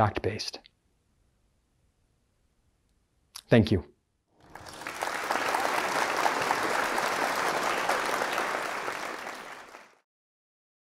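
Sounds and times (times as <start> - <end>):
audience applauding: 4.4 - 10.0.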